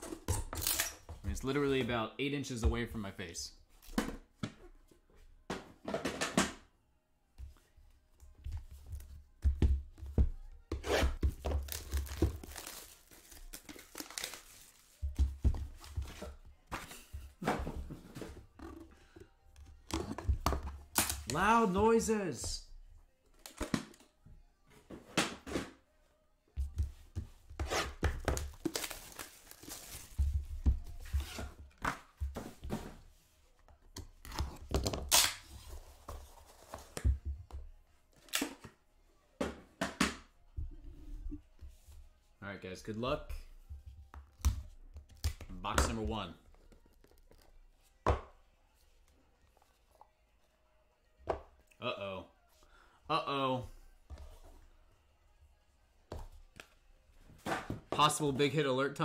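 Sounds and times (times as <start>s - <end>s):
cardboard tearing and rustling: 11.6s - 14.8s.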